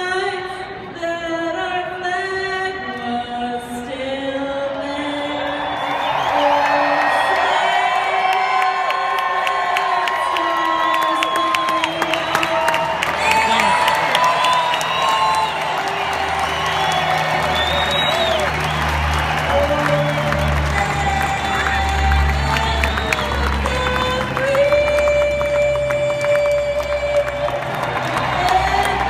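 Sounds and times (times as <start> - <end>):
crowd cheering and applauding: 5.2 - 29.0
shrill whistles: 11.0 - 20.7
aircraft engine drone: 12.0 - 29.0.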